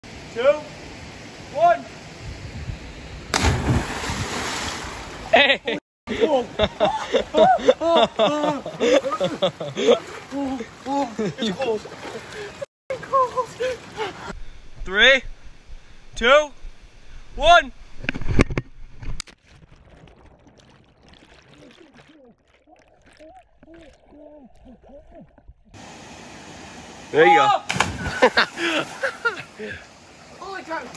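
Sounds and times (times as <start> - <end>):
body splashing into water: 3.3 - 5.3, 19.4 - 24.2, 27.7 - 29.3
muffled underwater bubbling: 19.5 - 25.8.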